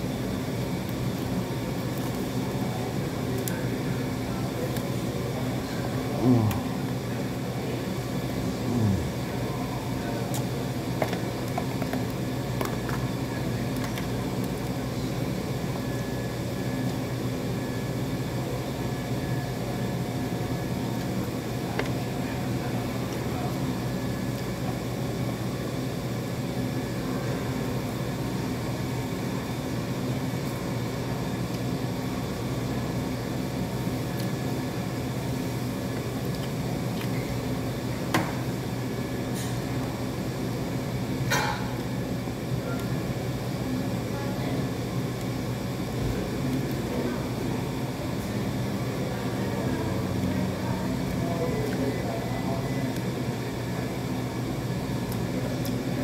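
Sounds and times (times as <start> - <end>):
low mechanical hum: 0.0 - 56.0
man humming through a mouthful: 6.1 - 7.0, 8.4 - 9.4.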